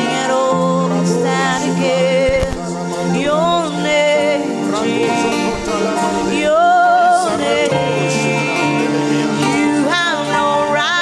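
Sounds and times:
violin with sliding notes: 0.0s - 11.0s.

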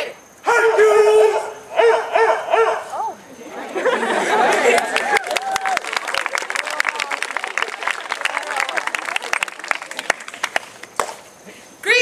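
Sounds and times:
crowd noise: 0.6s - 11.7s.

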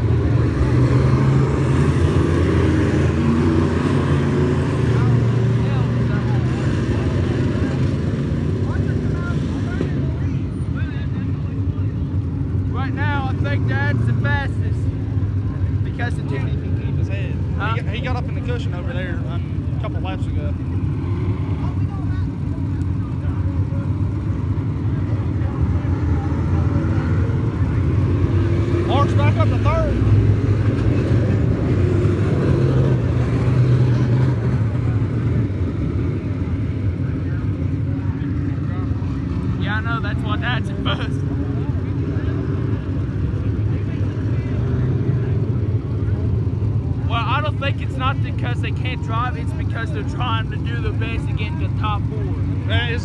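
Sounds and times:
race car engines droning: 0.0s - 53.0s.

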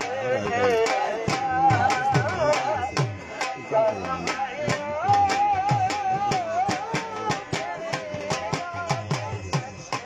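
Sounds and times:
dhol drum beat: 0.0s - 10.0s.

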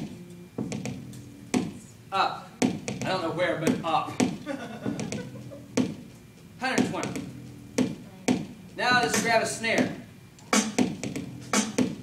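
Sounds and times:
drum machine hits: 0.0s - 1.8s, 2.6s - 12.0s.

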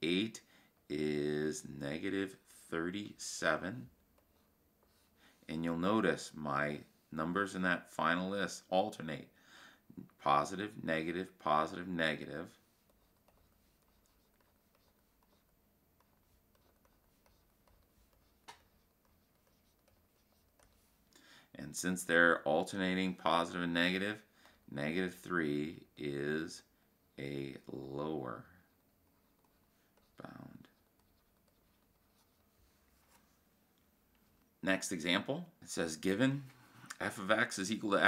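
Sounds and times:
digital pen scratching on screen: 12.1s - 21.0s, 29.1s - 32.4s.

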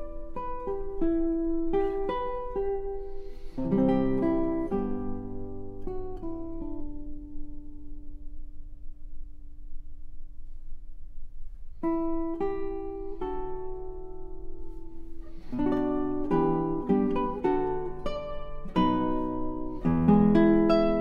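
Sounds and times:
solo classical guitar: 0.0s - 21.0s.

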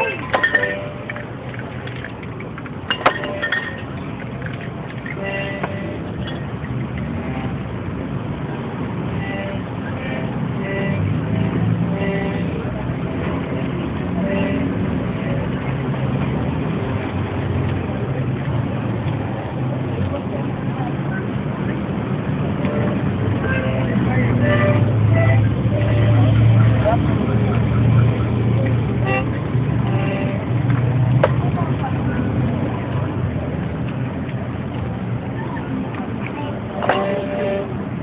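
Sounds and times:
motor traffic: 0.0s - 38.0s
people talking: 9.2s - 16.0s, 17.7s - 30.5s, 31.2s - 37.8s.

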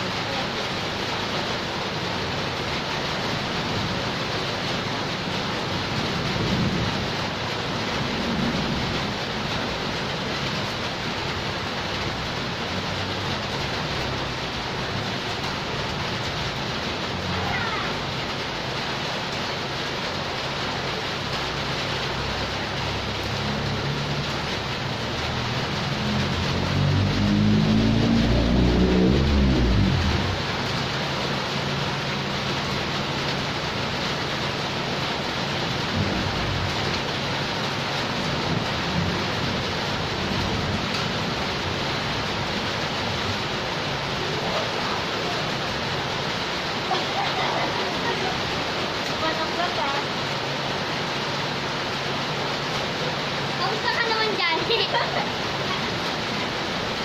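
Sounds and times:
heavy rain on pavement: 0.0s - 57.0s.

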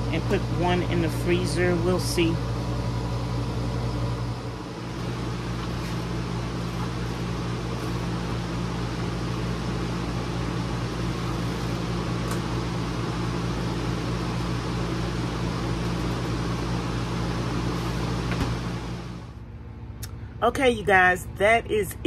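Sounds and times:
fan-driven machine humming: 0.0s - 22.0s.

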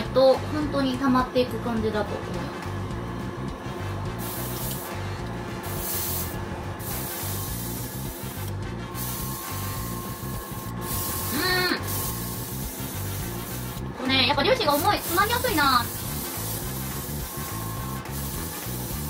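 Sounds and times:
airbrush spraying hiss: 4.2s - 5.0s, 5.6s - 13.9s, 14.7s - 19.0s.

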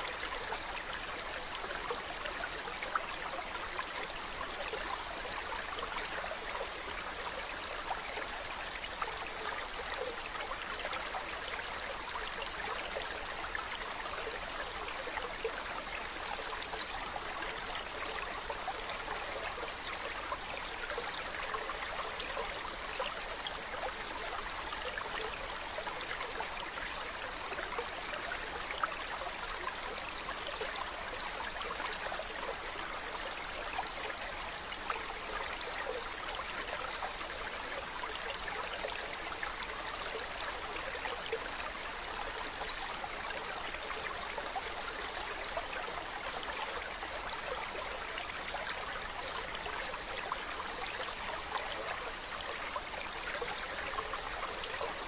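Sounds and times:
stream water trickling over stones: 0.0s - 55.0s.

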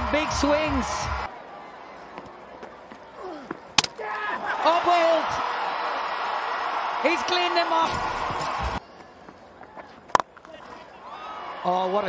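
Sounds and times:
cricket bat striking ball: 3.8s - 4.0s.

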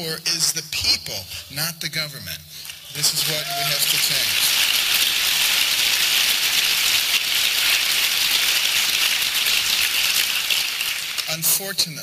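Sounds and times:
audience applauding: 2.9s - 11.6s.

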